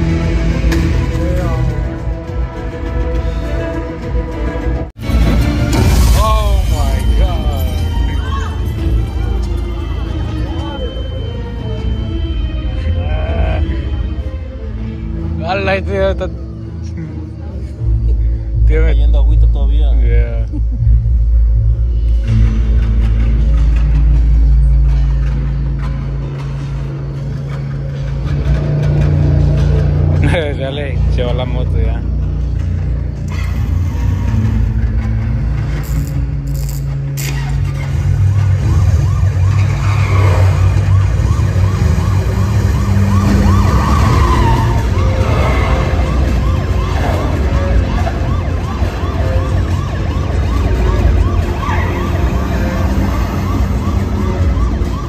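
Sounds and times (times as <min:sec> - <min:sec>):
police siren yelping: 0:37.9 - 0:55.0.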